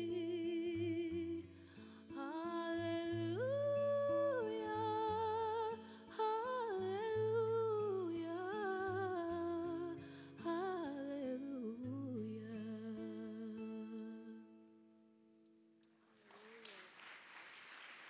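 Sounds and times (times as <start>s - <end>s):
acoustic guitar: 0.0s - 16.0s.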